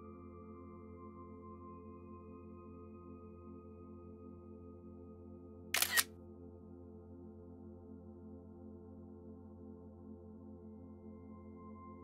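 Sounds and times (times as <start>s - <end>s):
soft background music: 0.0s - 12.0s
camera shutter double click: 5.8s - 6.1s.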